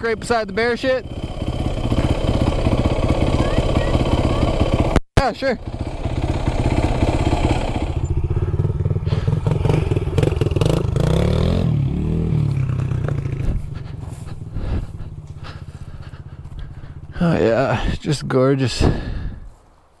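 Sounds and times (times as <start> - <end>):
motorcycle engine idling and revving: 0.0 - 19.8.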